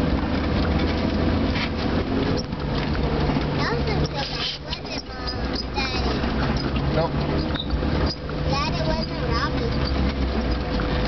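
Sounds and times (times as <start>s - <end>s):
vehicle engine running: 0.0s - 11.0s
vehicle riding over dirt trail: 0.0s - 11.0s.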